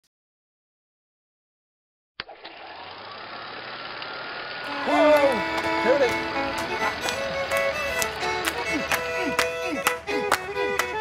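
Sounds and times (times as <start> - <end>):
street background hum: 2.8 - 11.0.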